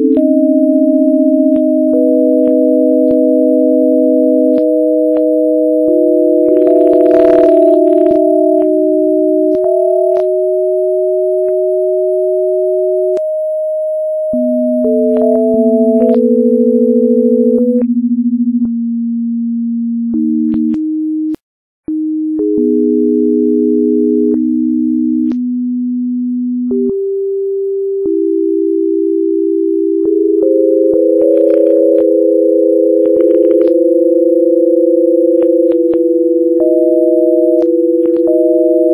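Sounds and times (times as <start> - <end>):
electronic sine tones: 0.0 - 38.9
click at pitch change: 35.4 - 36.0, 37.5 - 38.4.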